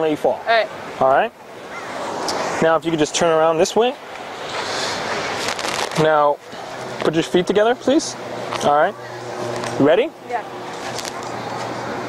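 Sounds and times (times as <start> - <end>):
ocean surf: 0.5 - 3.0, 4.0 - 5.6
brief crackle: 5.4 - 6.0.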